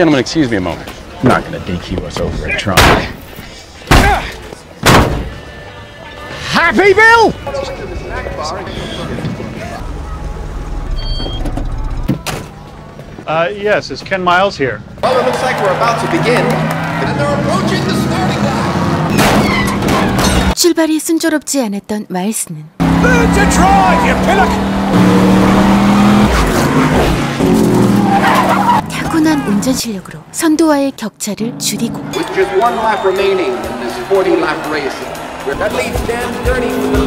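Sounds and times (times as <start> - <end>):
race car engines running hard: 14.8 - 20.2, 22.8 - 29.6, 31.5 - 37.0
tyres squealing: 15.8 - 20.6, 22.8 - 29.8
car engine rumbling: 22.8 - 30.4.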